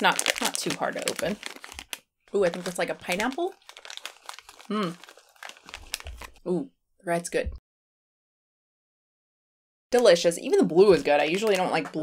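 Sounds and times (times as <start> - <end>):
plastic candy wrapper crinkling: 0.0 - 6.5, 10.9 - 12.0.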